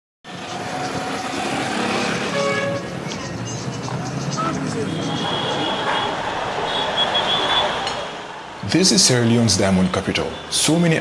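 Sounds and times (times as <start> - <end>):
motorbike and car engines: 0.3 - 9.4.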